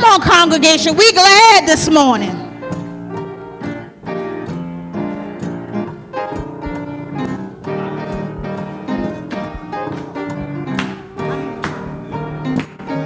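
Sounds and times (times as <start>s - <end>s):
sustained instrumental chords: 6.0s - 11.2s.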